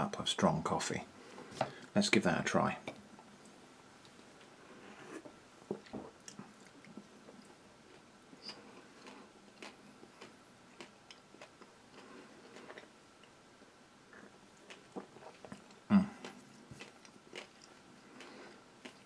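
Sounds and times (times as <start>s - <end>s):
person chewing: 5.8s - 13.4s, 14.1s - 19.0s.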